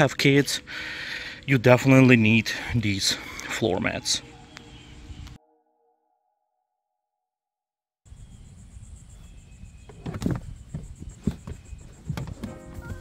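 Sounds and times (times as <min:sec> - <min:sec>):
outdoor background noise: 0:00.0 - 0:05.4, 0:08.1 - 0:13.0.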